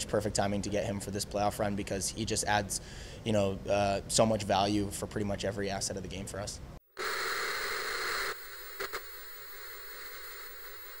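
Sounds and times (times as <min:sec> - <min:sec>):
television static hiss: 0:06.9 - 0:11.0.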